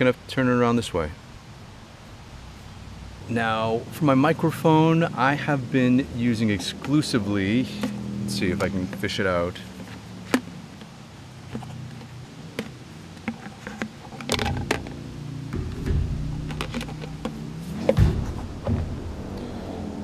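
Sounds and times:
low steady hum: 1.0 - 20.0
handling rumble: 4.2 - 20.0
items clicking inside water bottle: 6.7 - 18.2.

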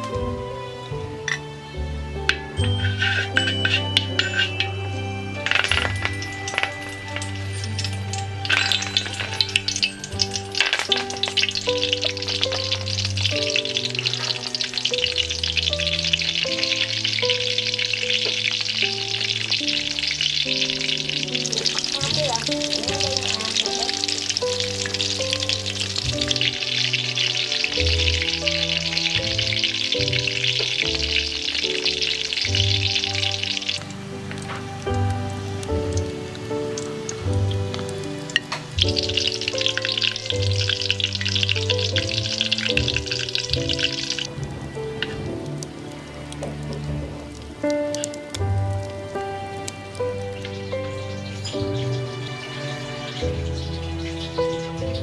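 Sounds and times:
soft background music: 0.0 - 55.0
hot oil sizzling in a wok: 2.4 - 55.0
sharp metal clinks: 2.6 - 11.5.

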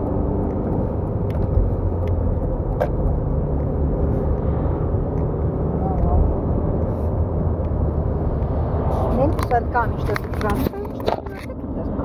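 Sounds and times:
car cabin road noise: 0.0 - 12.0.

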